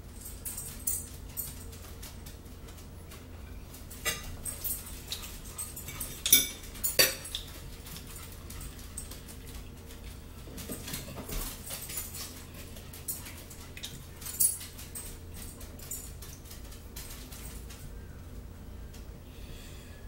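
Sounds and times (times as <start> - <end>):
steady low hum: 0.0 - 20.0
chewing and mouth clicks: 4.5 - 17.7.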